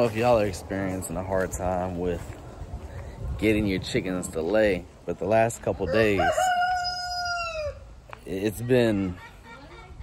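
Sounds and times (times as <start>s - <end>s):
rooster crowing: 5.9s - 7.8s.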